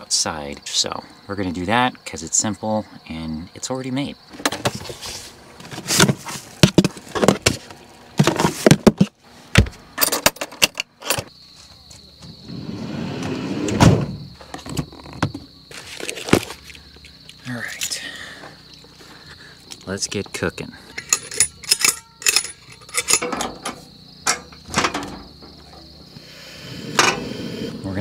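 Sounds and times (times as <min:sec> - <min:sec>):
crickets chirping: 0:00.0 - 0:28.0
cooking gear clattering: 0:20.9 - 0:25.5.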